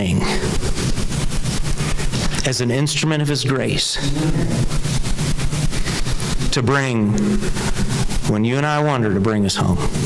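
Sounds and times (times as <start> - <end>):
low hum with even buzz: 0.0 - 10.0.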